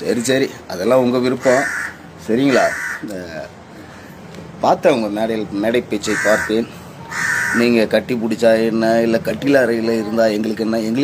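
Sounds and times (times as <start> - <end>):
man speaking: 0.0 - 3.7, 4.6 - 6.9, 7.5 - 11.0
crow cawing: 1.3 - 3.1, 6.0 - 7.8.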